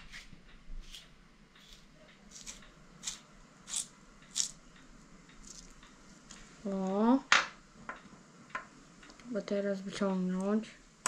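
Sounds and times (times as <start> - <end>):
potato crunching in spiral cutter: 1.6 - 4.6, 5.4 - 5.9.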